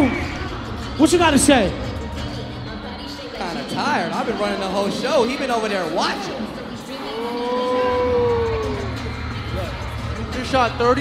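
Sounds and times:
low music beat: 7.1s - 11.0s.

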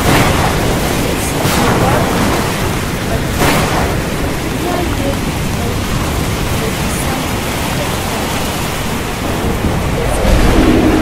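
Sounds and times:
heavy rain: 0.0s - 11.0s
thunder rumbling: 0.0s - 11.0s.

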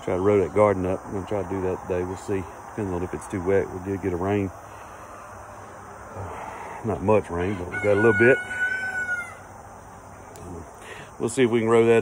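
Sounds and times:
low outdoor background: 0.0s - 12.0s
rooster crowing: 7.4s - 9.6s.

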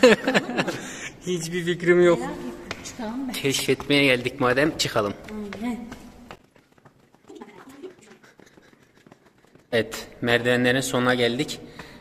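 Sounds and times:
footsteps on stone stairs: 2.4s - 10.6s.

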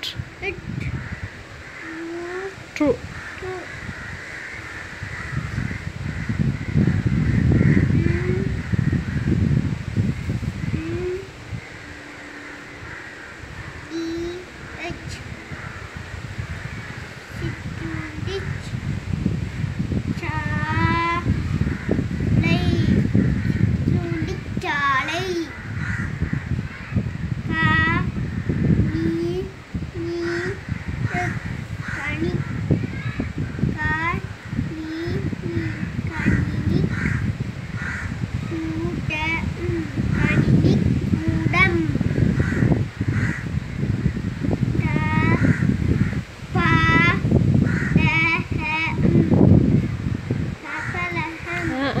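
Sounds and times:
child reading aloud: 0.0s - 4.0s, 7.1s - 8.7s, 10.2s - 12.9s, 13.5s - 15.7s, 16.6s - 25.7s, 27.4s - 37.2s, 38.3s - 43.2s, 44.5s - 52.0s
low rumbling background noise: 0.0s - 18.9s
crows cawing: 0.9s - 9.6s, 11.6s - 17.2s, 21.2s - 23.8s, 25.2s - 27.3s, 30.2s - 33.7s, 35.6s - 38.5s, 42.0s - 44.5s, 45.2s - 47.0s, 47.6s - 48.2s, 50.6s - 51.8s.

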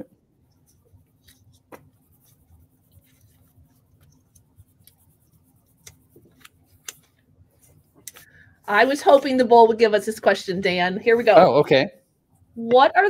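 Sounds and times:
faint steady hum: 0.0s - 13.0s
pens and paper handled: 0.5s - 9.4s.

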